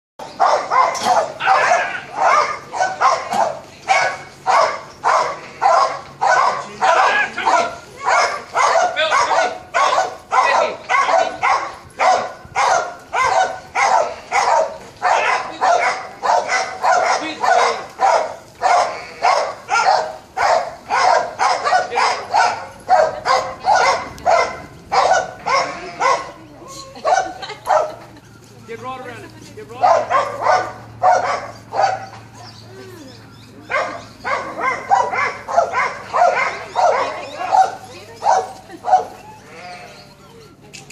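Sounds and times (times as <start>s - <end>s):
dog barking: 0.2s - 26.4s, 27.0s - 28.0s, 29.8s - 32.2s, 33.6s - 39.6s.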